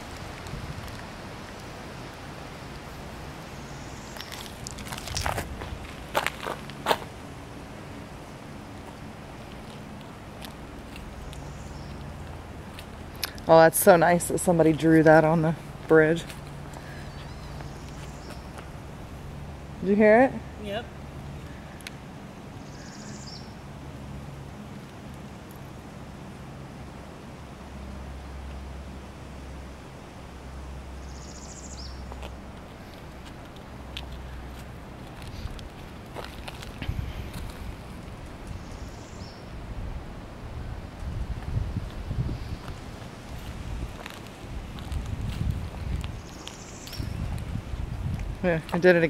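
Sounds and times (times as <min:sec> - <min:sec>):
wind gusts on microphone: 0:00.0 - 0:11.2, 0:32.4 - 0:49.0.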